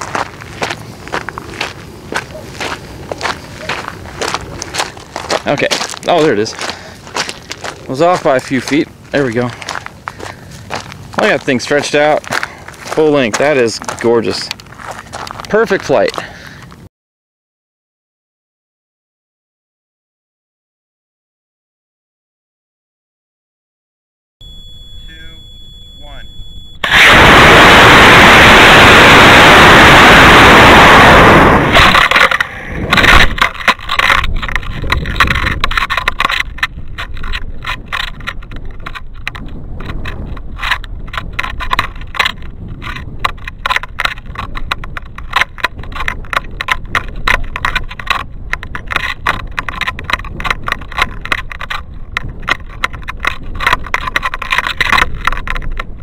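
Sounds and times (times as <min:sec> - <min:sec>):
rocket motor and wind rush: 0:00.0 - 0:14.8, 0:26.8 - 0:56.0
steady wind: 0:00.0 - 0:16.9, 0:24.4 - 0:56.0
knocks and rattles: 0:31.8 - 0:56.0.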